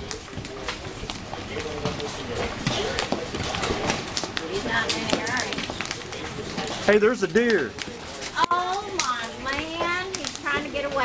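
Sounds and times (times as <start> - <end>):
hailstones striking surfaces: 0.0 - 11.0.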